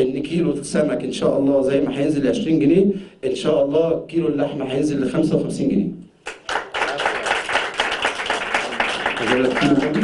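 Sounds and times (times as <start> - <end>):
audience applauding: 6.3 - 10.0.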